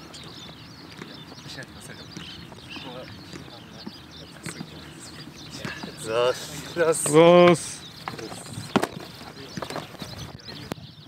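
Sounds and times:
footsteps in football boots: 0:00.0 - 0:10.3
faint birds chirping: 0:00.0 - 0:11.0.

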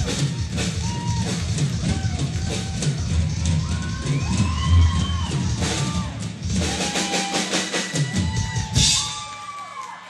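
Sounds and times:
drum kit solo: 0:00.0 - 0:09.5
crowd cheering and whooping: 0:00.0 - 0:10.0.

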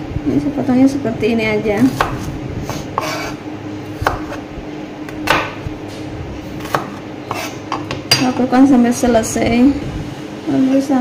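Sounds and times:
knife chopping on plastic board: 0:01.9 - 0:03.4, 0:04.0 - 0:04.4, 0:05.1 - 0:05.6, 0:06.6 - 0:08.2.

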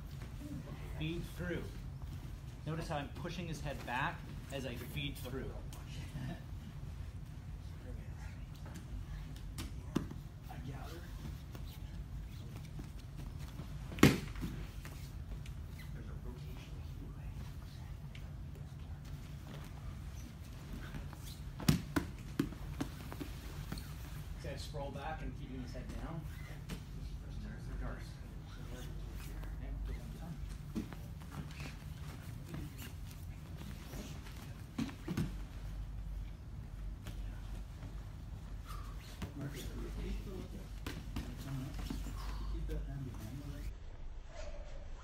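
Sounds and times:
low steady hum: 0:00.0 - 0:45.0.

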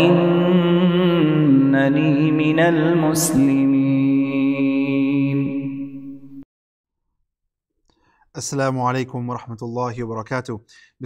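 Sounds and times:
man chanting melodically: 0:00.0 - 0:06.2.

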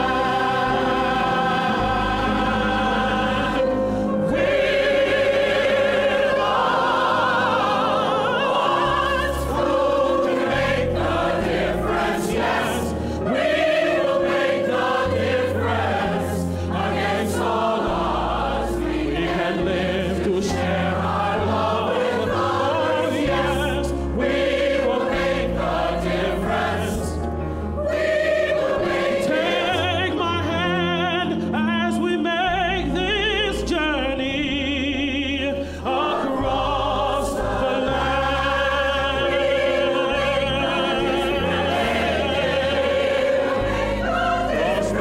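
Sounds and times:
choir singing in harmony: 0:00.0 - 0:45.0.

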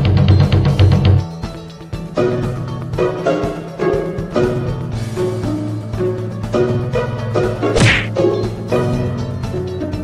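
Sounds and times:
background music: 0:00.0 - 0:10.0
cartoon swish ending in thud: 0:07.8 - 0:08.1.

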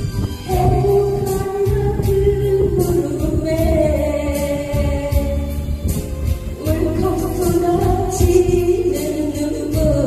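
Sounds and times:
instrumental accompaniment with bass and drums: 0:00.0 - 0:10.0
woman singing into microphone: 0:00.0 - 0:10.0.

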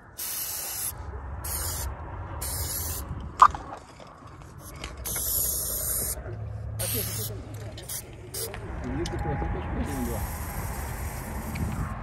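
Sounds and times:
spray-paint can hissing: 0:00.2 - 0:03.0, 0:04.6 - 0:06.2, 0:06.8 - 0:08.6, 0:09.9 - 0:12.0.

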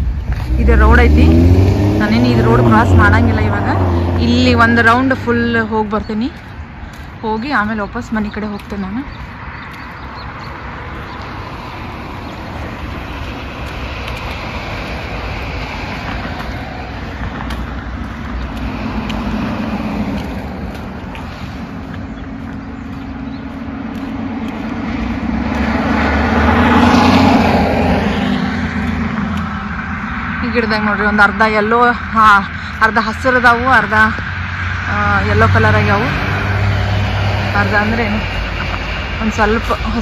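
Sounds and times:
car tyre and engine noise: 0:00.0 - 0:40.0.

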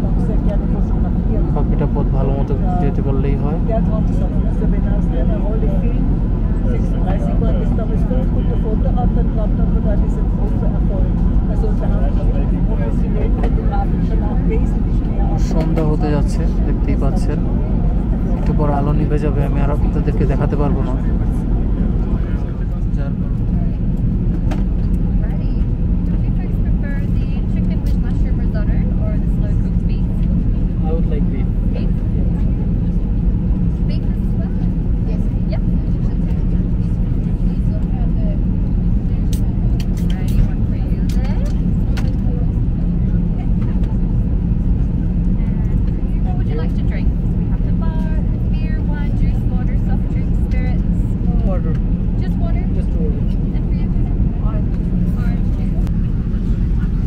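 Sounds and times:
airliner cabin drone: 0:00.0 - 0:57.0.

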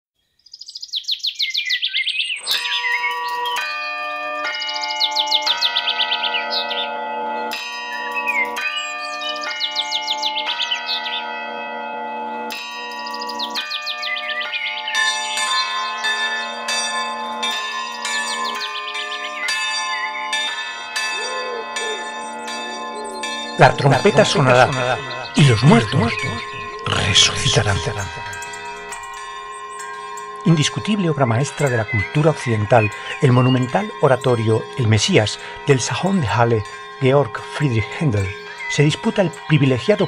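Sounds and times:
birds chirping: 0:00.2 - 0:11.4, 0:12.8 - 0:40.0
church bells pealing: 0:02.4 - 0:40.0.

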